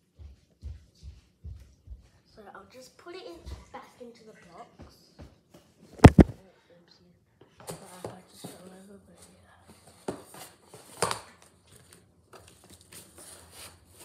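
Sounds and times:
knocks on a box: 6.0 - 6.4.

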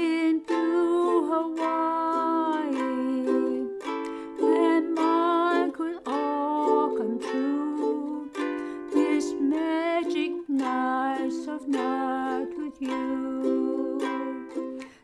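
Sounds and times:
ukulele strummed slowly: 0.0 - 15.0.

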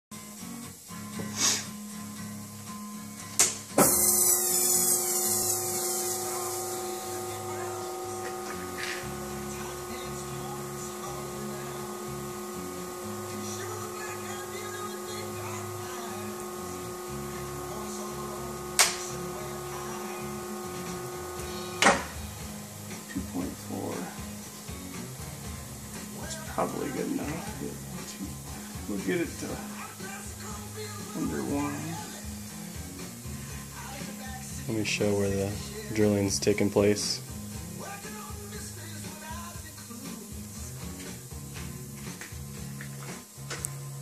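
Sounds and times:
balancing machine whine and hum: 3.8 - 36.0.

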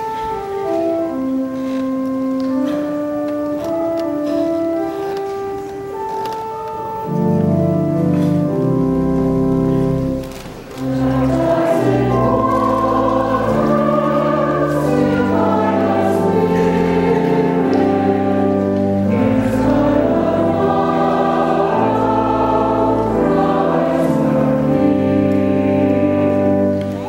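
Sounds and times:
organ chords: 0.0 - 27.0
choir singing: 10.7 - 27.0.

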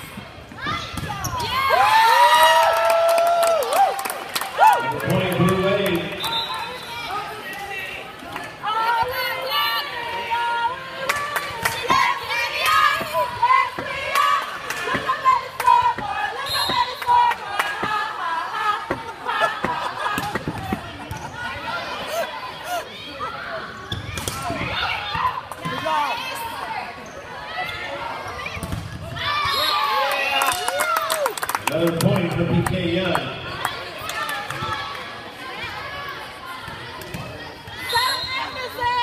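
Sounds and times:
spectators shouting and cheering: 0.0 - 39.0.

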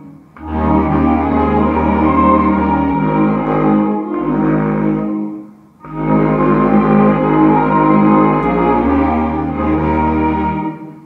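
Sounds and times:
low clarinet melody: 0.0 - 11.0
orchestral backing track: 0.0 - 11.0.

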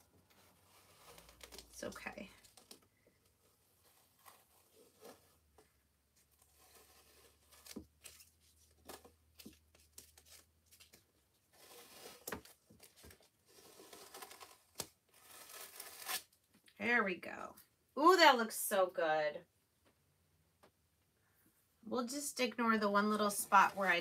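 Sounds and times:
stencil peeling off rustling: 0.2 - 16.3.

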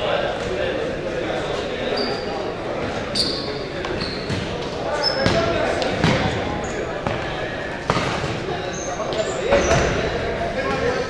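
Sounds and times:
indistinct voices: 0.0 - 11.0
sneakers squeaking: 0.3 - 11.0.

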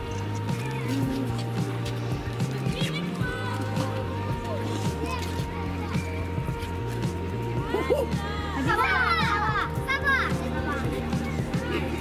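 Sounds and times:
background music with beat: 0.0 - 12.0
children chattering: 0.0 - 12.0.

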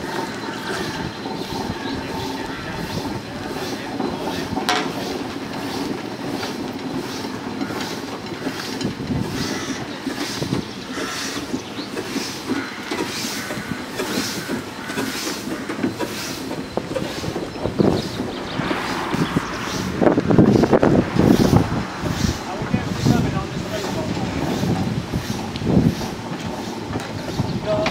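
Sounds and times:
iron rolls rumbling and clanking: 0.0 - 27.9
steam exhaust beating: 0.0 - 27.9.

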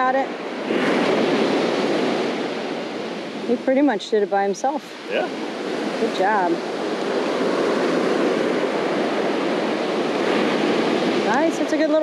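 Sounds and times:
ocean surf breaking: 0.0 - 12.0.

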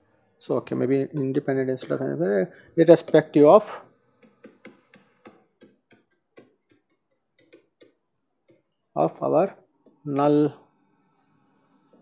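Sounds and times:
stylus tapping on tablet: 4.2 - 8.7.

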